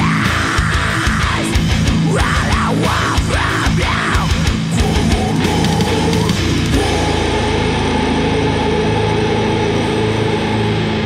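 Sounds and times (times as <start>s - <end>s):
distorted electric guitars: 0.0s - 11.0s.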